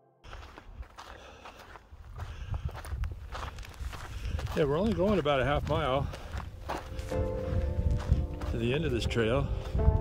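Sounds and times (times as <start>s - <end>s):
footsteps on sandy trail: 0.2s - 10.0s.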